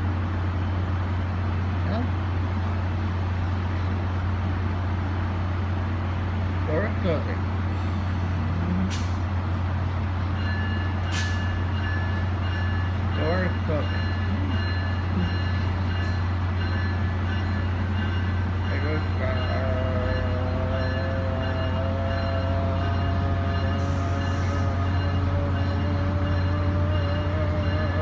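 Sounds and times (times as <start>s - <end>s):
diesel train engine drone: 0.0s - 28.0s.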